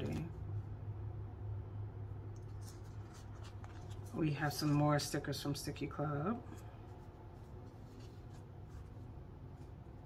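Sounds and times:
steady low hum: 0.0 - 10.0
paper rustles and scrapes: 2.4 - 5.3, 6.5 - 10.0.

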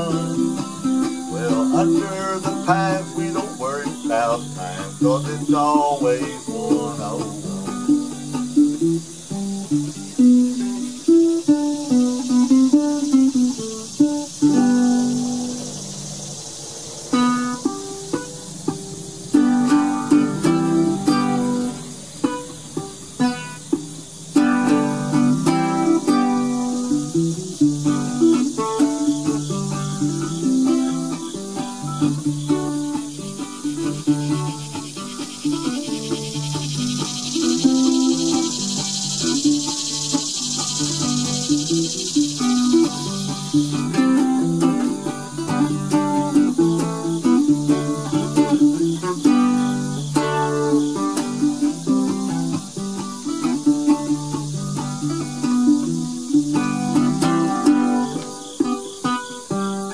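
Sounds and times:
ukulele melody: 0.0 - 59.9.

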